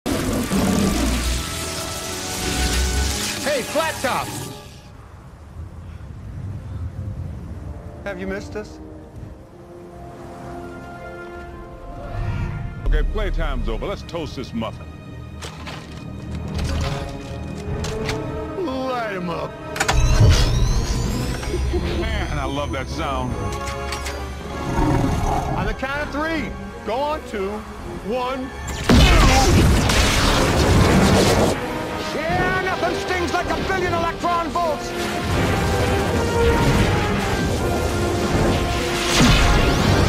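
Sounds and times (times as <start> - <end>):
crackling electric lightning: 0.1 - 4.9, 28.7 - 40.0.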